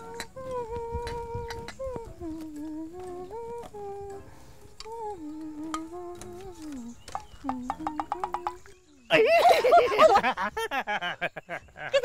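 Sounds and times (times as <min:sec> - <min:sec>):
woman humming a tune: 0:00.0 - 0:09.0.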